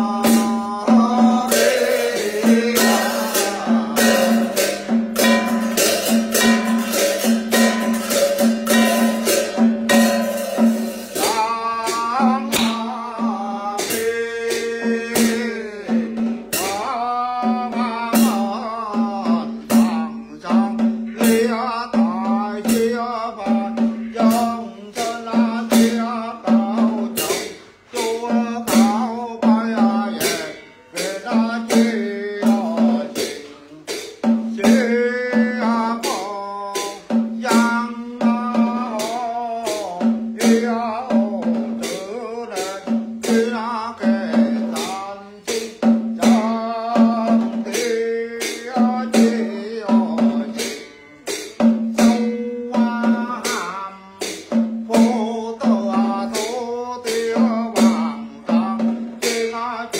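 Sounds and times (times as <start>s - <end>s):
man chanting melodically: 0.0s - 59.9s
sharp percussive strikes: 0.0s - 59.9s.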